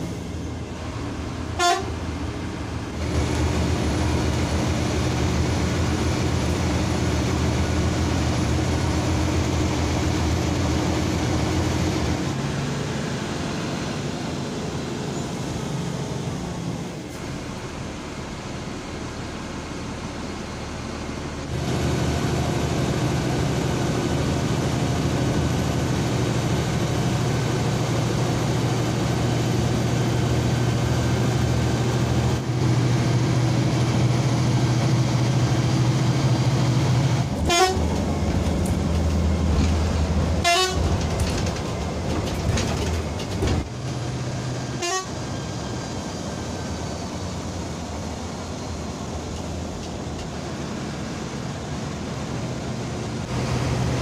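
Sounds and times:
bus diesel engine droning: 0.0s - 54.0s
horn toot: 1.6s - 1.9s, 37.4s - 37.9s, 40.4s - 40.9s, 44.8s - 45.2s.

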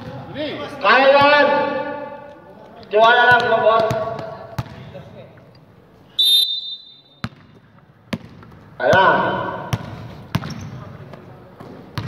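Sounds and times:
referee's whistle blast: 6.2s - 7.2s.

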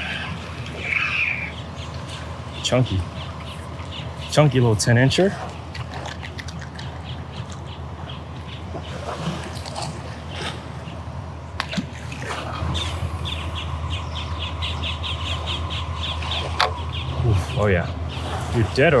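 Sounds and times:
birds calling: 0.0s - 19.0s
low steady rumble: 0.0s - 19.0s.

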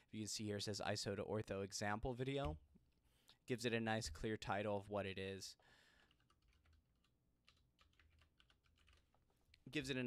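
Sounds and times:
soft keyboard typing: 6.0s - 9.4s.

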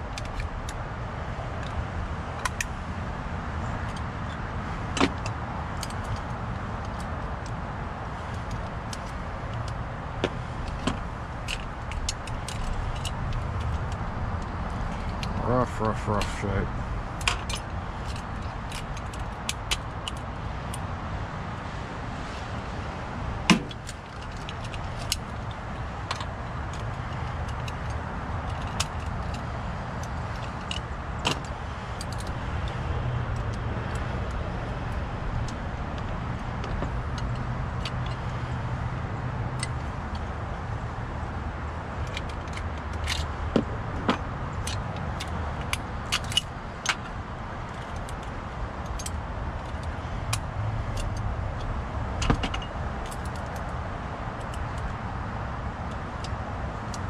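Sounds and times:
metal lock parts clicking: 0.0s - 0.8s, 10.4s - 15.4s, 17.2s - 20.8s, 23.5s - 38.6s, 42.0s - 53.7s.

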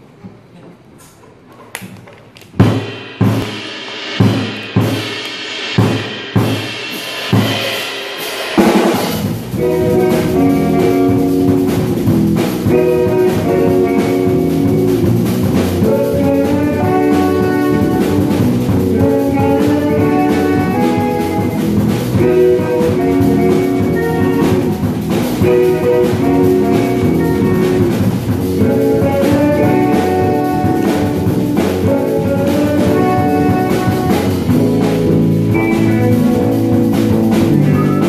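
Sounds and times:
loud accented band hits: 2.6s - 38.0s
jazz fusion band playing: 8.2s - 38.0s
tenor saxophone melody: 9.5s - 38.0s.

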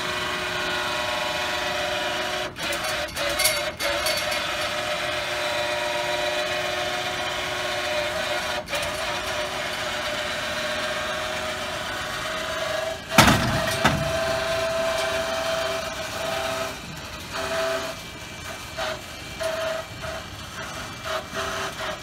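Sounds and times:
loud metal clunk: 13.1s - 15.7s.

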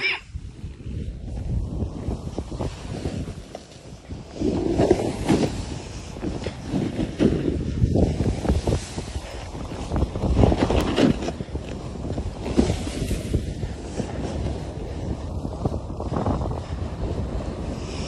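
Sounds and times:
wind rushing over microphone: 0.0s - 18.0s
skis carving through snow: 0.8s - 18.0s.

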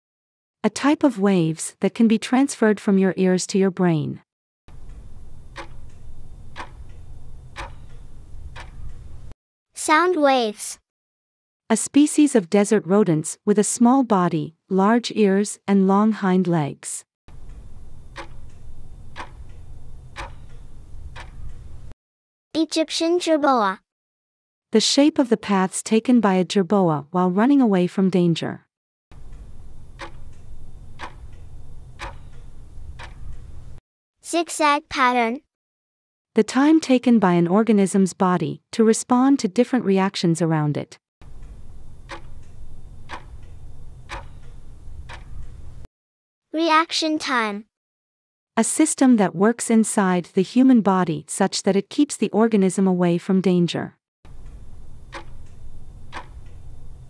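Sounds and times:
low steady hum: 4.7s - 9.3s, 17.3s - 21.9s, 29.2s - 33.8s, 41.2s - 45.9s, 54.3s - 57.0s
clock ticking: 4.7s - 9.4s, 17.3s - 22.0s, 29.2s - 33.8s, 41.2s - 45.9s, 54.3s - 57.0s.

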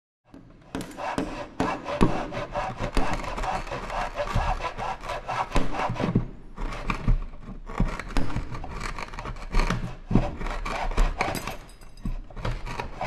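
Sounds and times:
saw scraping wood: 0.3s - 13.0s.

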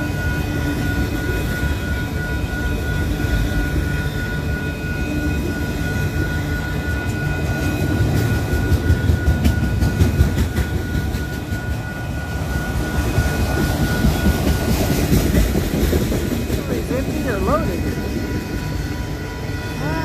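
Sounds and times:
freight train wheels clacking: 0.0s - 20.0s
steady high tone: 0.0s - 20.0s.

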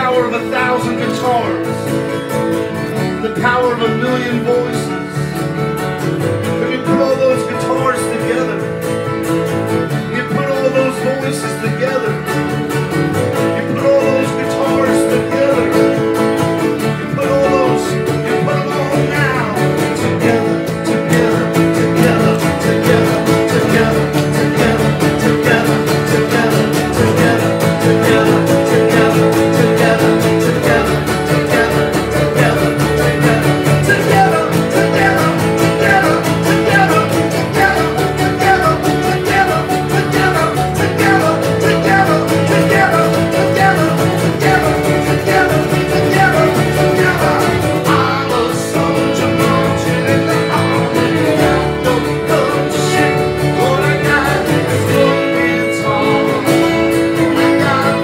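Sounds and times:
man singing: 0.0s - 2.2s, 2.8s - 5.4s, 6.4s - 58.0s
strummed acoustic guitars: 0.0s - 58.0s
fiddle: 4.5s - 58.0s.

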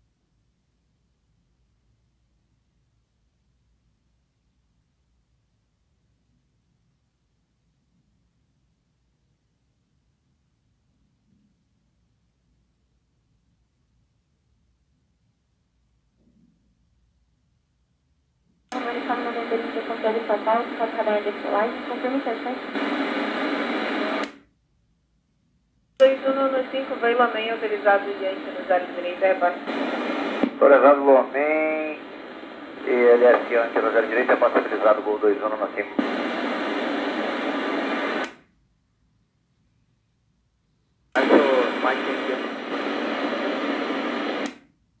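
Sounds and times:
air traffic radio transmission: 18.8s - 24.3s, 26.0s - 38.2s, 41.2s - 44.4s
loud radio hiss: 18.8s - 24.4s, 26.0s - 38.3s, 41.2s - 44.6s.

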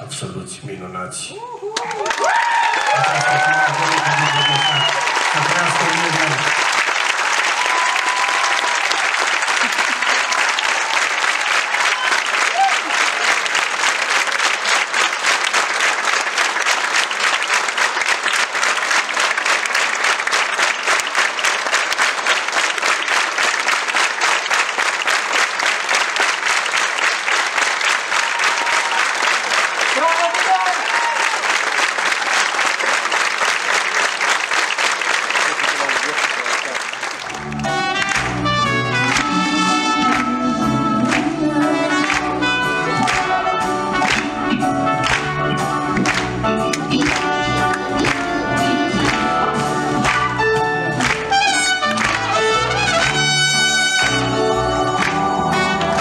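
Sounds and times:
audience applauding: 1.7s - 56.0s.

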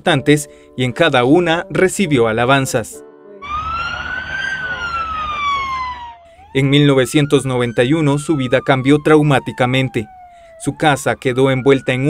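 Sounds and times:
siren wailing: 3.3s - 12.0s.

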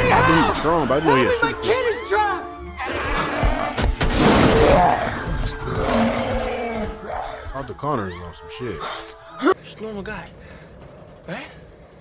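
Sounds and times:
creature-like roar: 2.8s - 7.3s.

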